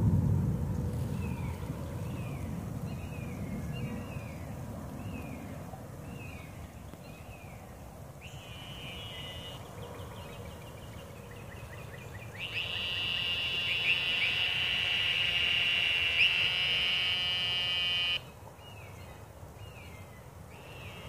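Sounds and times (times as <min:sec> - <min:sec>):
faint insect chirps: 0:08.2 - 0:09.7, 0:12.3 - 0:18.3
loud high-pitched insect buzz: 0:12.4 - 0:18.2.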